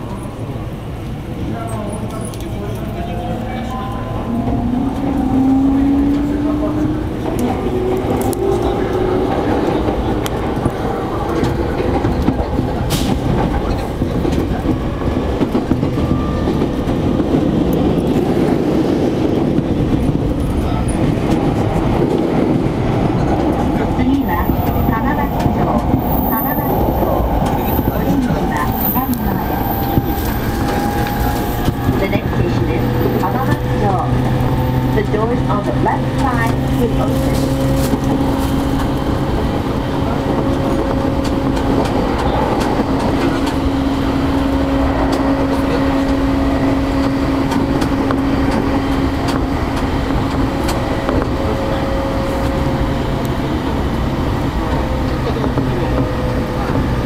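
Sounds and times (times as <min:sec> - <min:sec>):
train running on track: 0:00.0 - 0:57.0.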